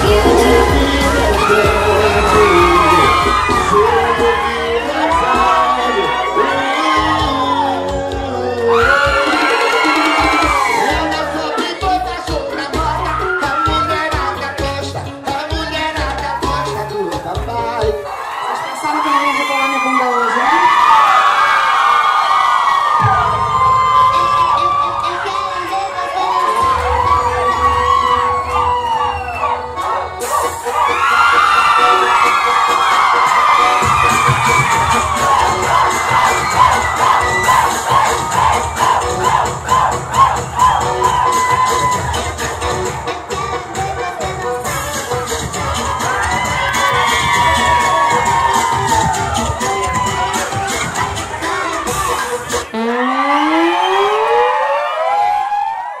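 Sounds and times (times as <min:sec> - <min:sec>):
rising tone sweep: 0:00.0 - 0:04.9, 0:52.5 - 0:55.8
crowd cheering and whooping: 0:00.0 - 0:14.6, 0:15.8 - 0:56.0
dance music with steady beat: 0:00.0 - 0:21.3, 0:22.9 - 0:55.9.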